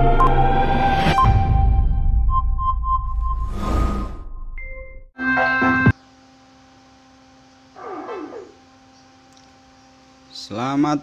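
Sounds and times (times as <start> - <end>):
electrical mains hum: 5.4 - 11.0.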